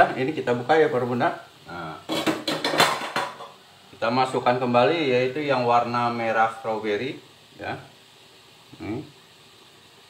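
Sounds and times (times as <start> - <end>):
metal cookware clattering: 2.0 - 3.6.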